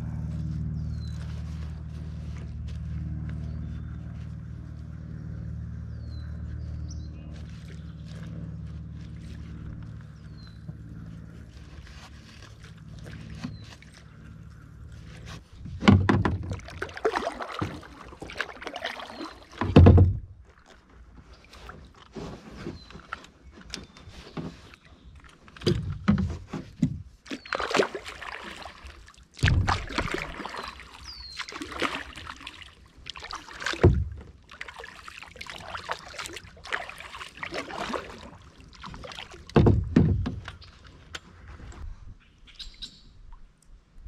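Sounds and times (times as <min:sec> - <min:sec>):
water splashing against hull: 0:00.0 - 0:42.1
loud knocks on hull: 0:15.8 - 0:16.7, 0:19.6 - 0:20.3, 0:29.4 - 0:30.3, 0:33.8 - 0:34.3, 0:39.5 - 0:40.5
loud low thump: 0:29.4 - 0:30.1.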